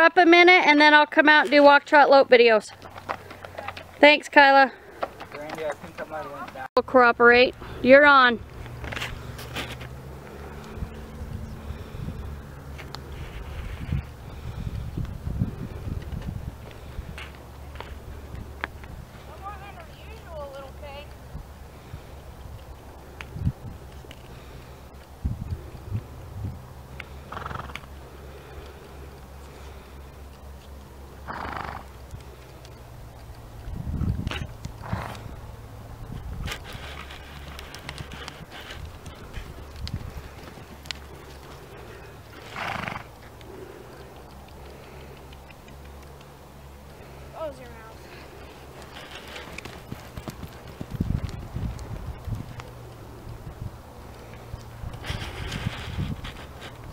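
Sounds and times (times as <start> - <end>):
horse hooves thudding on sand: 0.9 - 6.7, 7.4 - 56.9
horse snorting: 27.1 - 27.9, 31.2 - 32.0, 34.8 - 35.4, 41.1 - 43.7
horse hoofbeats on sand: 36.2 - 44.4, 47.5 - 52.8.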